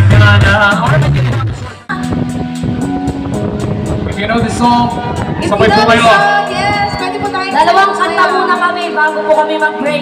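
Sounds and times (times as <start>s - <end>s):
steady drum beat: 0.0s - 8.5s
held keyboard notes: 1.9s - 10.0s.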